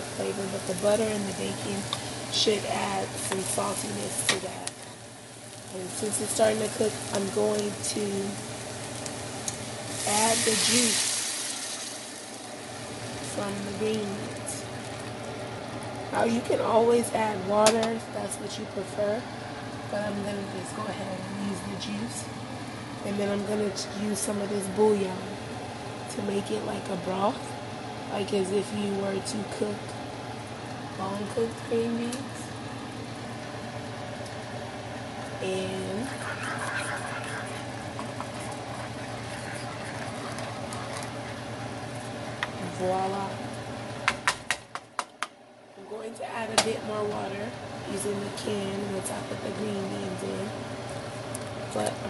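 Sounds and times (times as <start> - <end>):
onions and bacon sizzling: 0.0 - 17.9, 29.6 - 45.0
low hum with faint hiss: 0.0 - 52.0
person speaking: 35.4 - 37.7.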